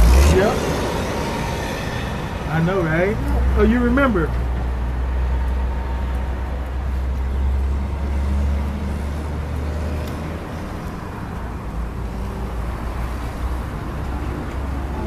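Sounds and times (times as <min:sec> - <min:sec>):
passing vehicle engine hum: 0:00.0 - 0:15.0
road traffic rumble: 0:00.0 - 0:15.0.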